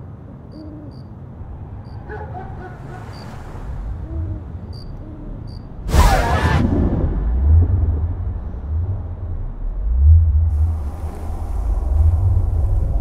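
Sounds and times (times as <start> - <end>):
deep low rumble: 1.3 - 13.0.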